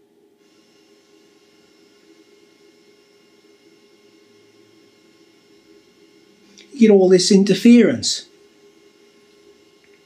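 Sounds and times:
interference hiss and buzz: 0.0 - 10.0.

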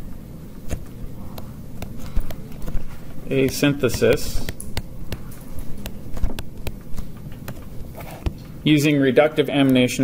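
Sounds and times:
stylus tapping on tablet screen: 0.7 - 8.4.

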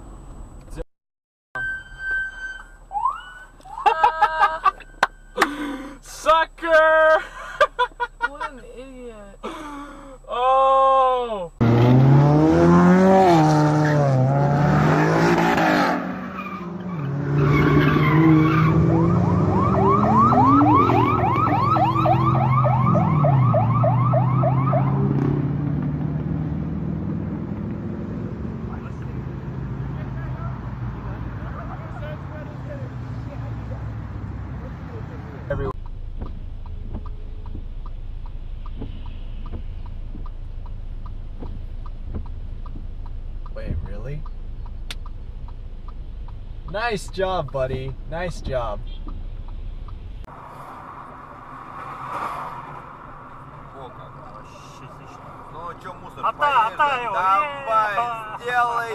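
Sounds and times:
pulsing tyre squeal: 1.6 - 3.8, 14.8 - 25.0
car engine revving: 11.5 - 58.9
faint ticks: 35.8 - 43.6, 44.2 - 46.8.

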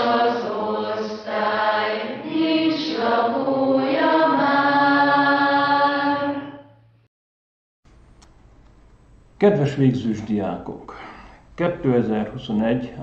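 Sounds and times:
voices singing slow melody: 0.0 - 6.8.

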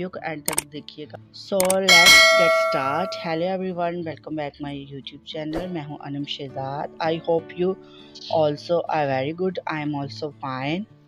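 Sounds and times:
bright bell ding: 1.9 - 3.4.

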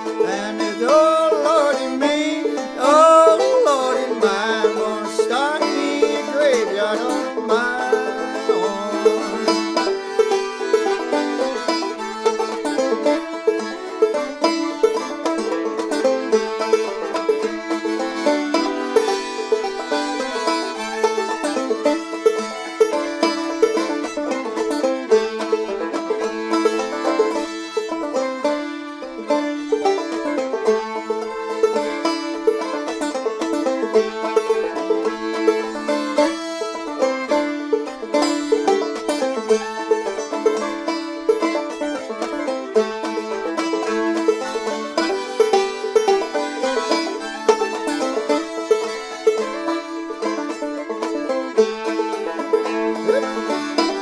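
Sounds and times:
bowed fiddle: 0.0 - 54.0
plucked banjo: 0.0 - 54.0
button accordion: 34.0 - 37.0, 44.5 - 54.0.

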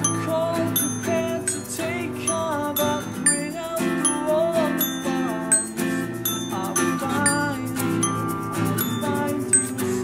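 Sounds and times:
man singing: 0.0 - 10.0
strummed acoustic guitars: 0.0 - 10.0
toy glockenspiel notes: 0.0 - 10.0.

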